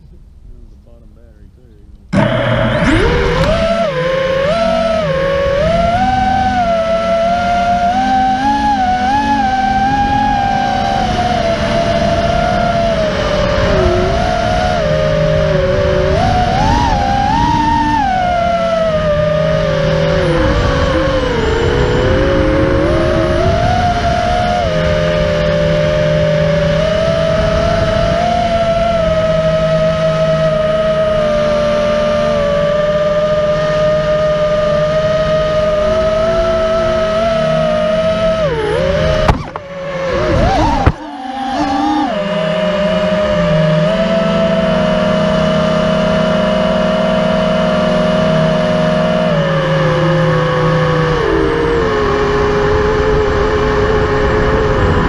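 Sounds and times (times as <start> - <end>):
quadcopter motors whining: 0.0 - 55.0.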